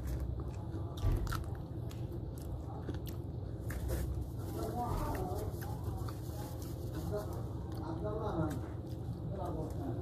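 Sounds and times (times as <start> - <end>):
biting and chewing: 0.0 - 10.0.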